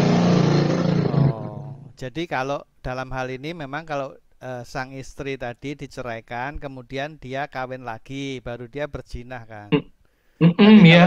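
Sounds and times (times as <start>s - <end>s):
man's drawn-out vocal sound: 1.1s - 1.9s.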